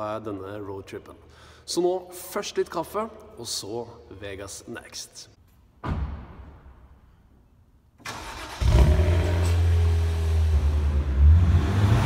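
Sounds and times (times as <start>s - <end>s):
car engine starting and revving: 8.0s - 12.0s.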